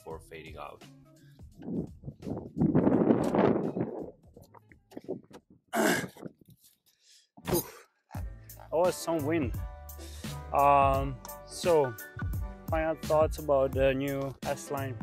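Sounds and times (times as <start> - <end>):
wind gusting over microphone: 1.6 - 5.4.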